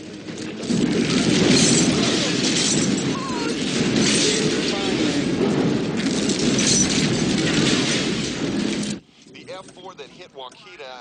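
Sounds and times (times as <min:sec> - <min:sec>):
loud dense rushing din: 0:00.0 - 0:09.0.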